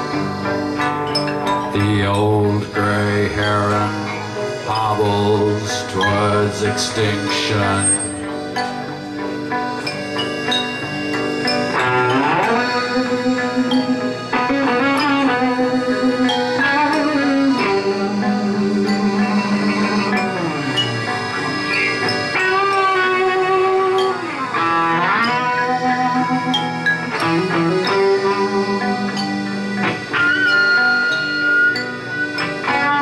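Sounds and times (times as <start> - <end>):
accordion: 0.0 - 33.0
electric guitar: 0.0 - 33.0.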